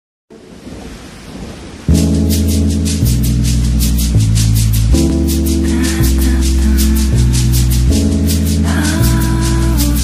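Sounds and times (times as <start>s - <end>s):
rain: 0.3s - 10.0s
thunder rumble: 0.3s - 10.0s
jazz music with deep bass: 1.9s - 10.0s.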